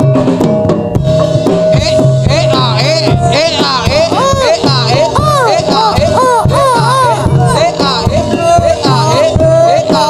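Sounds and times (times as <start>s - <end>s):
rapid drum strokes: 0.0s - 10.0s
wavering high melody: 1.0s - 10.0s.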